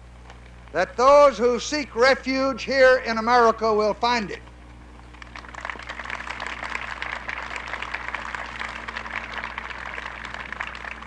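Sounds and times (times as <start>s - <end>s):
low hum: 0.0s - 11.0s
audience applauding: 5.1s - 11.0s.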